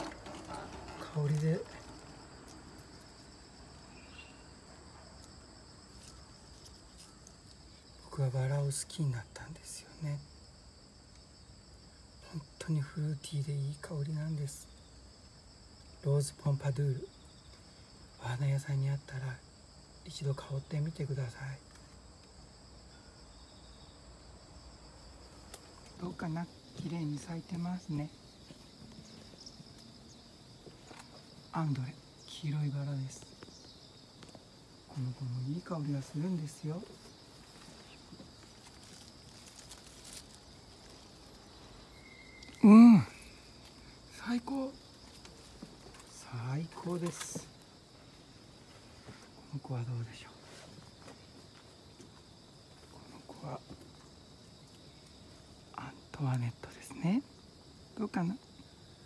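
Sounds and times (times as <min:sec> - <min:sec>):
crickets trilling: 0:00.0 - 0:59.0
insects chirring: 0:00.0 - 0:59.0
faint chirp: 0:03.9 - 0:04.5, 0:41.8 - 0:43.4.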